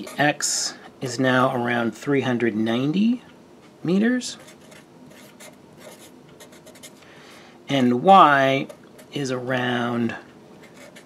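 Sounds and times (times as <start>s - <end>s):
marker pen scratching on paper: 0.0s - 0.3s, 4.4s - 7.0s, 10.6s - 11.0s.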